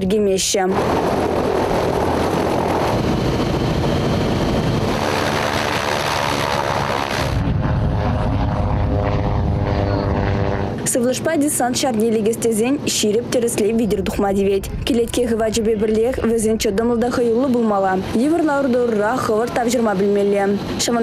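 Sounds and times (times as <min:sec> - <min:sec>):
propeller aircraft engine: 0:00.0 - 0:21.0
propeller wash and wind: 0:00.0 - 0:21.0.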